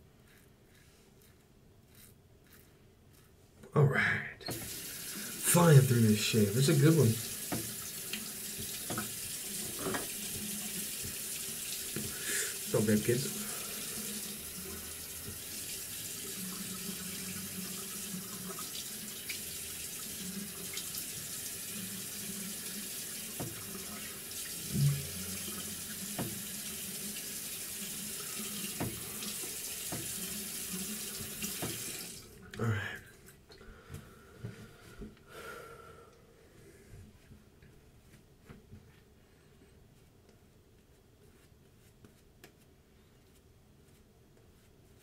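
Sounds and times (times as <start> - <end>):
tap running water: 4.5 - 32.3.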